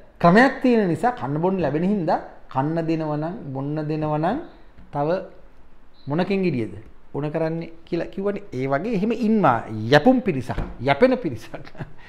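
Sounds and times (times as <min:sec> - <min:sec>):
man speaking emphatically: 0:00.2 - 0:05.4, 0:06.1 - 0:11.6.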